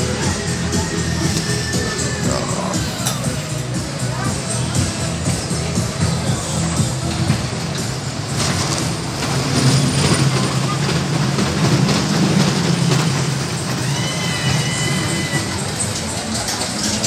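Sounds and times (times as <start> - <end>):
roller coaster rumbling on track: 0.0 - 17.0
high squeal: 13.6 - 16.0.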